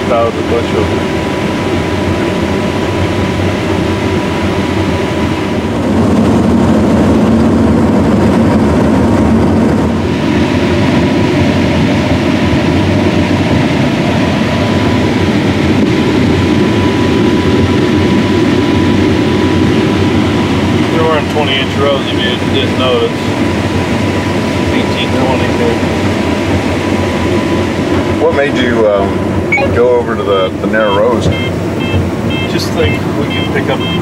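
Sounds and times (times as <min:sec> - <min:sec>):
combine harvester din: 0:00.0 - 0:34.0
thin steady whine: 0:09.9 - 0:34.0.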